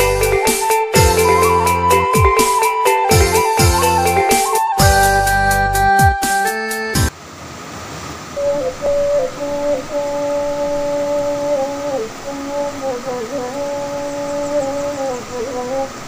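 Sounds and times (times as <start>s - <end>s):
bamboo flute melody: 0.0s - 7.1s, 8.4s - 15.8s.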